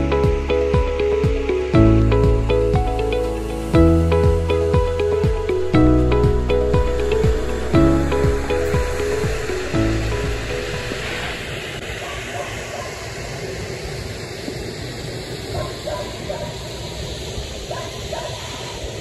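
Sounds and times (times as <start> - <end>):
background music: 0.0 - 11.4.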